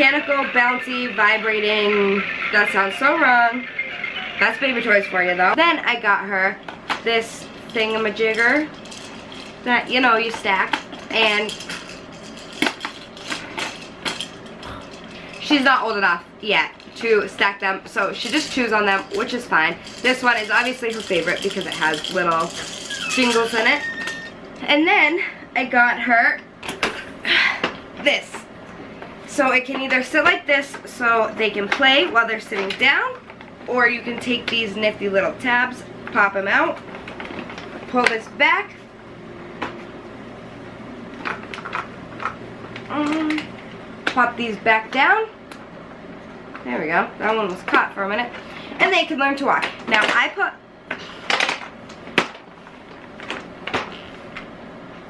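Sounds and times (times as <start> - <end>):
plastic toy rings clicking: 19.8 - 24.3.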